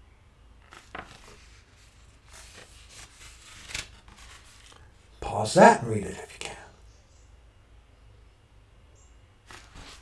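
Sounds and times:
page swishing: 0.6s - 4.8s, 9.5s - 10.0s
book pages rustling: 0.6s - 4.9s, 9.4s - 10.0s.

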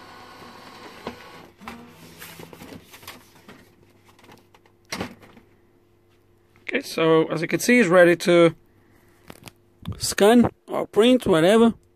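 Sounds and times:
printer motor whirring: 0.0s - 2.7s.

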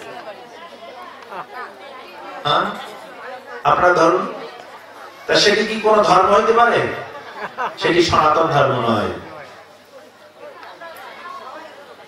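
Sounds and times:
man speaking into a microphone: 2.4s - 2.8s, 3.6s - 4.4s, 5.3s - 7.2s, 7.8s - 9.5s.

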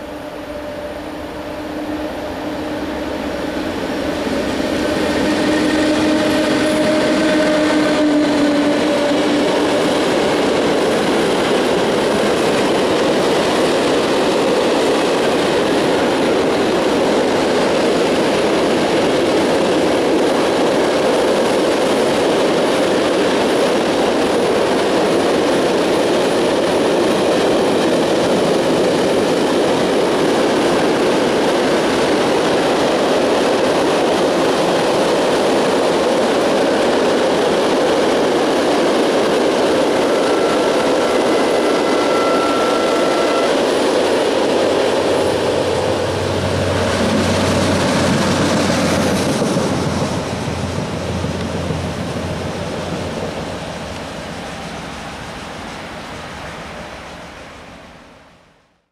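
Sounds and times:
freight train rumble and clatter: 0.0s - 58.9s.

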